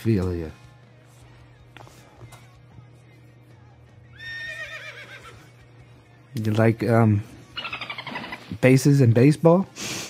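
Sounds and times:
horse whinny: 4.2 - 5.5.

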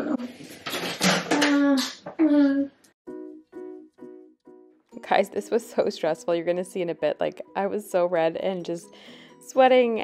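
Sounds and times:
woman's voice: 5.0 - 10.0.

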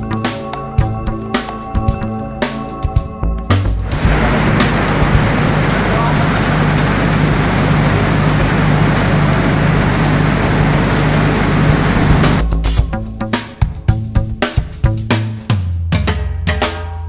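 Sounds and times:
diesel generator running: 3.7 - 12.5.

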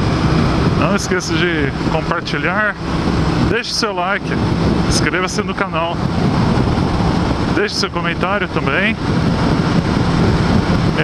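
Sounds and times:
motorcycle engine running: 0.0 - 11.0
road noise: 0.0 - 11.0
wind noise: 0.0 - 11.0.

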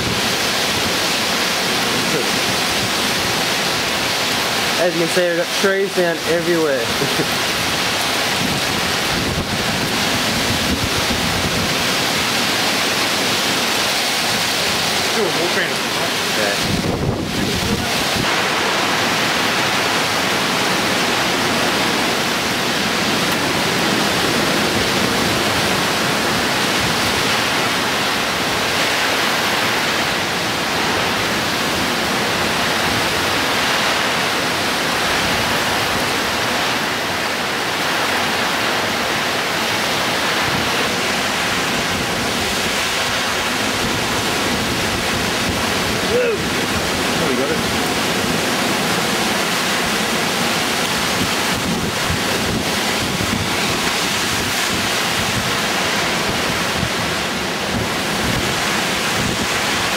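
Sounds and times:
heavy rain pouring: 0.0 - 59.9
strong wind through trees: 0.0 - 59.9.

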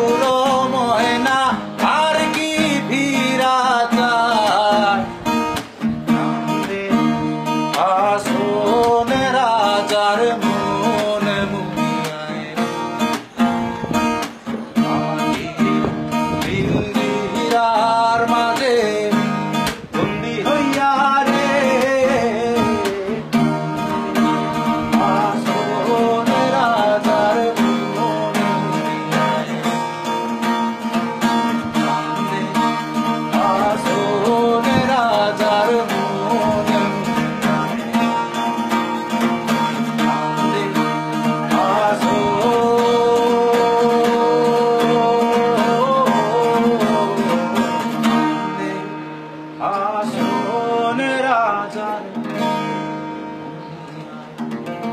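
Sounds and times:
acoustic guitar strumming: 0.0 - 54.9
man singing: 0.0 - 54.9.

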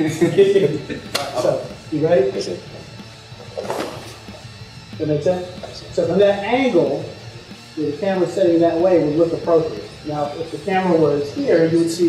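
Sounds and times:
quiet background music: 0.0 - 12.0.

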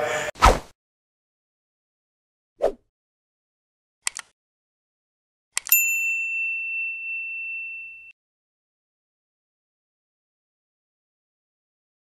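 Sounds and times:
notification bell ding: 5.7 - 8.2.

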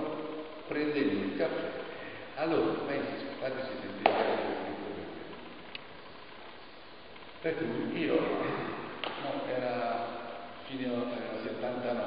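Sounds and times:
sharp smack: 4.0 - 4.5.

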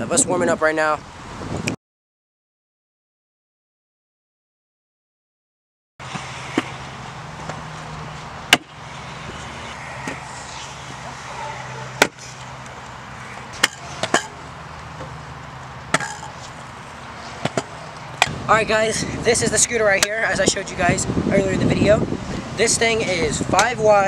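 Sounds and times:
distant traffic hum: 6.0 - 24.0.

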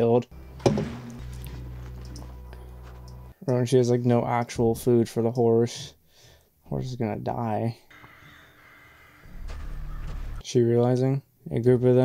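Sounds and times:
tense low music: 0.3 - 3.4
crows cawing: 7.9 - 10.4.

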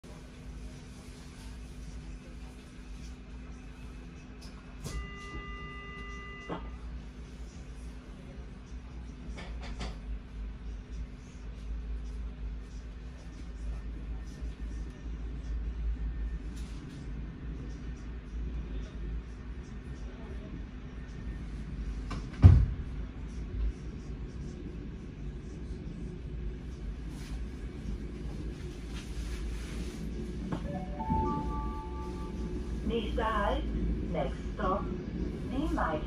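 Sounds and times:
train low rumble: 0.0 - 36.0.

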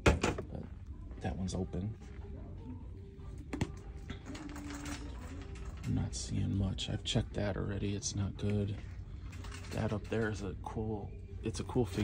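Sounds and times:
low background hum: 0.0 - 12.0
shopping cart rattling: 4.1 - 6.5, 9.3 - 10.4.

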